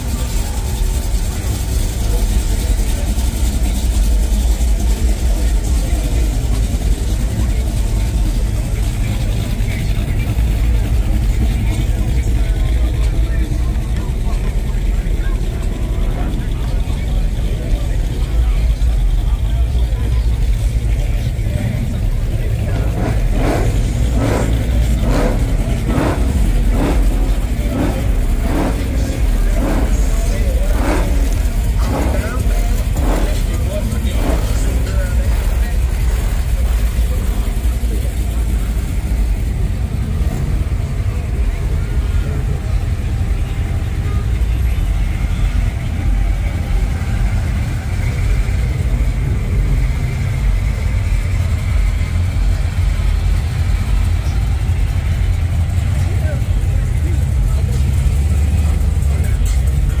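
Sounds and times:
car engines rumbling: 0.0s - 60.0s
people's voices: 0.0s - 60.0s.

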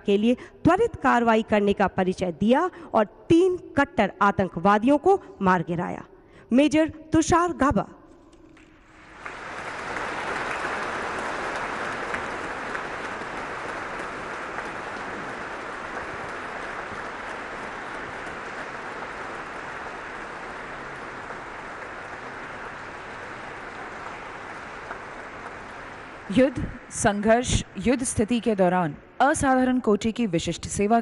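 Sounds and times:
audience applauding: 8.6s - 27.3s.

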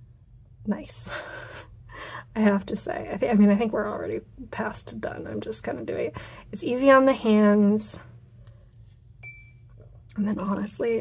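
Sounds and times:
faint low hum: 0.0s - 11.0s
thin glass ring: 9.2s - 9.9s.

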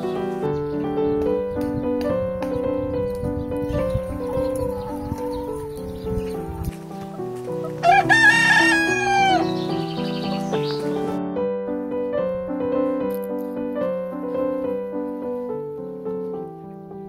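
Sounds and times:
piano music: 0.0s - 17.0s
rooster crowing: 7.8s - 9.7s.

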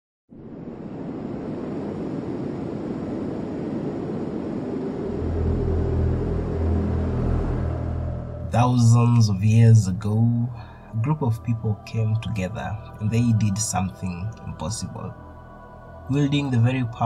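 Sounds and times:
rumbling wash of noise: 0.3s - 17.0s
low sustained drone notes: 0.4s - 17.0s.

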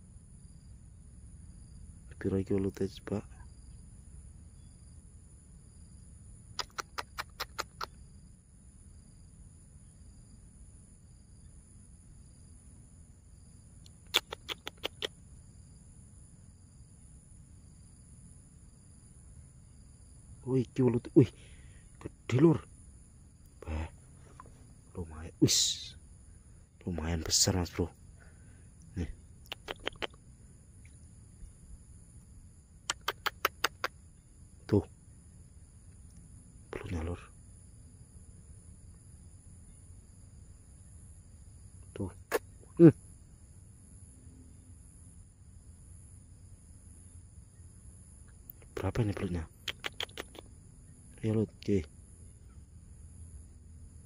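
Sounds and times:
faint high-pitched whine: 0.0s - 54.0s
high-pitched insect chirring: 5.8s - 8.2s, 13.4s - 15.8s, 28.8s - 35.9s, 47.4s - 51.9s
sharp clicks: 6.6s - 8.0s, 13.8s - 15.2s, 29.4s - 30.2s, 32.8s - 34.0s, 49.5s - 50.5s
sharp ticks: 6.6s - 8.0s, 13.8s - 15.2s, 28.9s - 30.2s, 32.8s - 34.0s, 48.3s - 50.5s.

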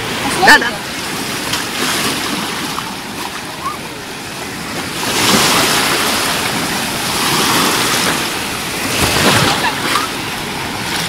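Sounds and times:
waves breaking in shallows: 0.0s - 11.0s.

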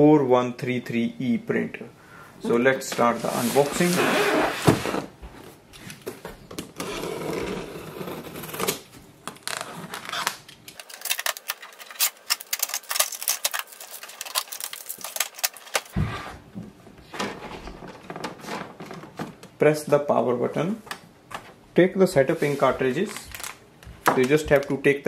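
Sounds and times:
box cutter slitting tape: 6.8s - 8.8s, 10.0s - 16.0s
packing tape peeling off plastic: 6.8s - 16.0s.

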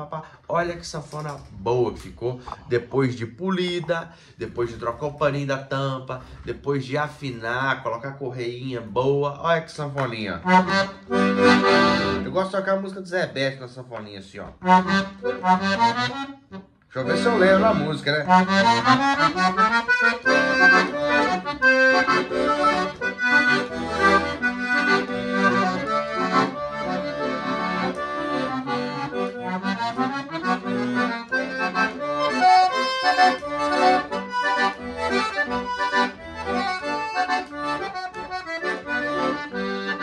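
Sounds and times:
accordion playing a lively tune: 0.0s - 7.6s, 10.0s - 13.0s, 14.4s - 40.0s.

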